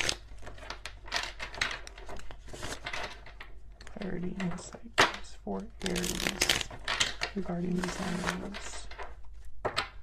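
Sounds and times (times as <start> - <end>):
cards being shuffled: 0.0 - 4.8, 5.8 - 10.0.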